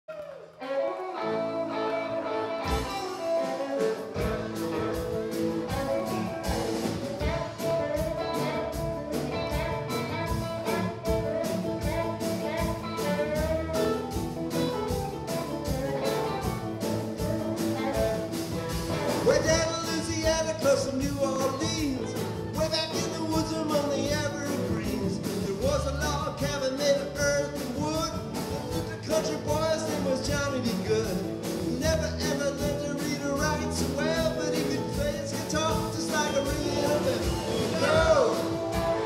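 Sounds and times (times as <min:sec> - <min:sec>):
electric guitars: 0:00.1 - 0:39.0
bass guitar: 0:00.2 - 0:39.0
keyboard: 0:00.9 - 0:39.0
drum kit: 0:01.1 - 0:39.0.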